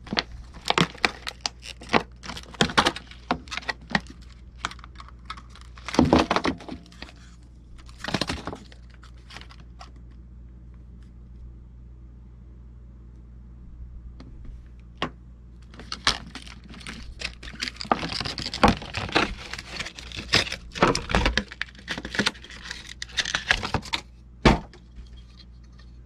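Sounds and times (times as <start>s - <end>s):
plastic packaging crackling: 0.0s - 10.0s, 15.6s - 24.1s.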